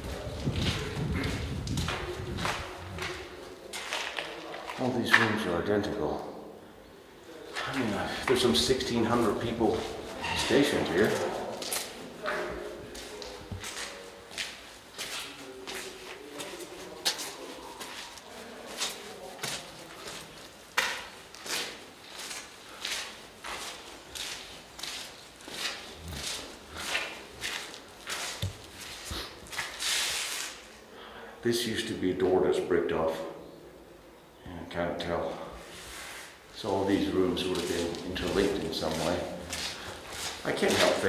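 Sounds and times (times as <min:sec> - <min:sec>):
footsteps crunching on gritty concrete: 0:00.0 - 0:05.4, 0:07.6 - 0:30.6, 0:37.0 - 0:41.0.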